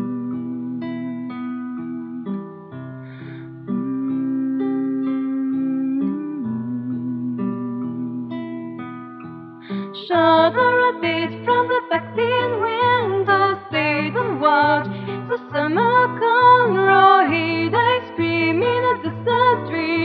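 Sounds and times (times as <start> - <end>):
long held wavering tone: 0.0 - 2.6, 3.4 - 8.9
person singing: 0.0 - 8.8, 9.6 - 20.0
acoustic guitar plucking: 0.0 - 20.0.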